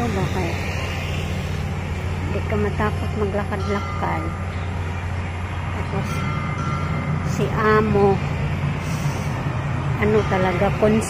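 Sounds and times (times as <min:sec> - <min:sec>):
low rumble of road traffic: 0:00.0 - 0:11.0
vehicle engine running nearby: 0:00.0 - 0:11.0.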